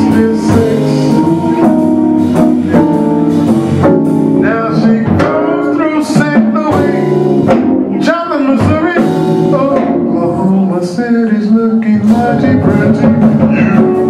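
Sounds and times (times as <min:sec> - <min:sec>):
drum beat: 0:00.0 - 0:10.2, 0:12.0 - 0:14.0
man singing: 0:00.0 - 0:14.0
organ chords: 0:00.0 - 0:14.0
electric guitar: 0:11.9 - 0:14.0.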